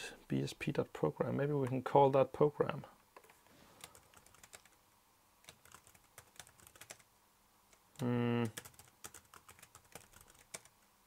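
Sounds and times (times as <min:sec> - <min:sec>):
typing on laptop keyboard: 0:03.2 - 0:04.8, 0:05.4 - 0:07.1, 0:08.0 - 0:10.7.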